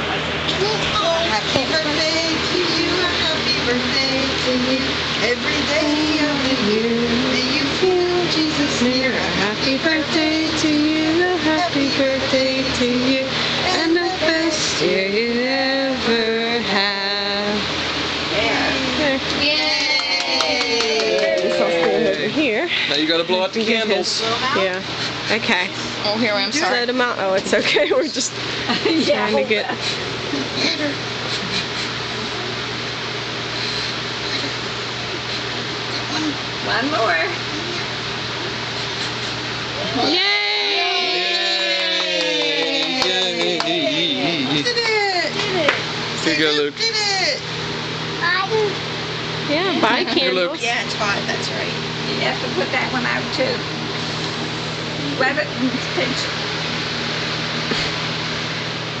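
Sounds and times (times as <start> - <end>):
room noise hiss: 0.0 - 59.0.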